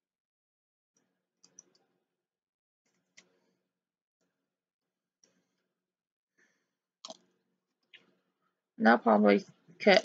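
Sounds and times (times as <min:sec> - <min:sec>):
woman speaking: 0:08.8 - 0:10.0.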